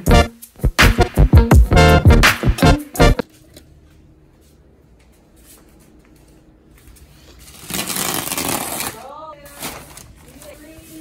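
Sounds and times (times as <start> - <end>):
plastic film tearing and rustling: 7.4 - 11.0.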